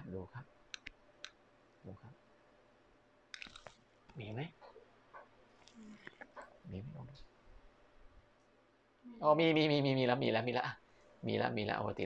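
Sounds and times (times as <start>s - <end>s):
man speaking: 0.0s - 0.5s, 4.2s - 4.6s, 6.7s - 7.2s, 9.2s - 12.0s.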